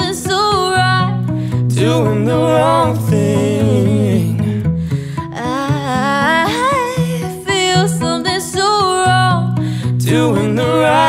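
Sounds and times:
woman singing: 0.0s - 4.1s, 5.3s - 11.0s
strummed acoustic guitar: 0.0s - 11.0s.

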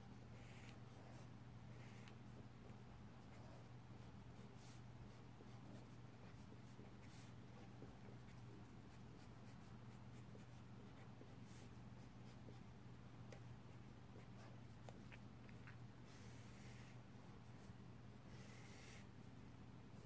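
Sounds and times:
pencil scratching on paper: 0.3s - 2.2s, 3.2s - 12.7s, 18.3s - 19.1s.

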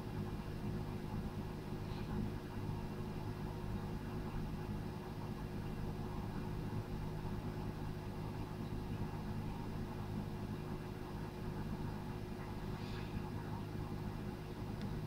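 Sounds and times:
low machine hum: 0.0s - 15.0s.

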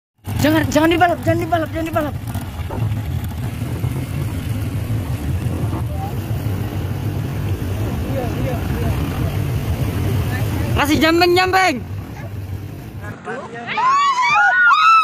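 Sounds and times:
vehicle engine running: 0.2s - 13.3s.

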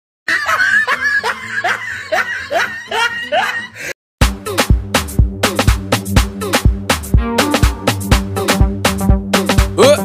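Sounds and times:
person laughing: 0.3s - 3.9s.

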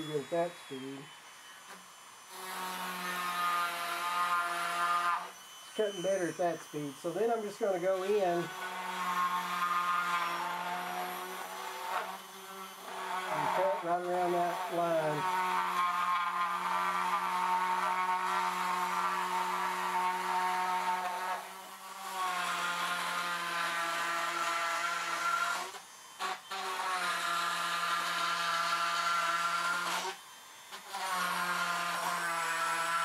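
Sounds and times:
rotary tool drilling foam: 0.0s - 33.0s.

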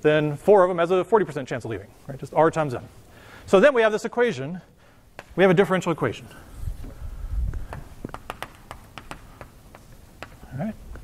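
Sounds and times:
chalk tapping on blackboard: 7.6s - 10.5s.

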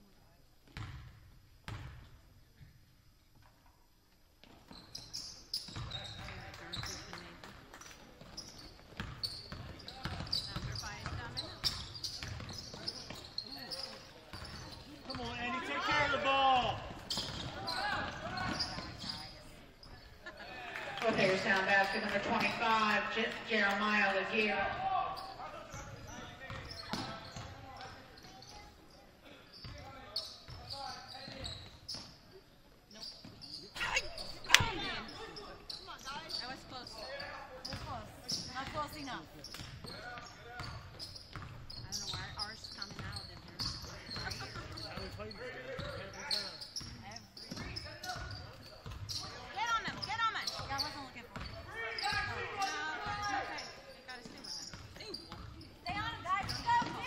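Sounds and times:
players and spectators calling out: 13.3s - 27.3s, 33.7s - 39.1s, 49.1s - 57.0s.

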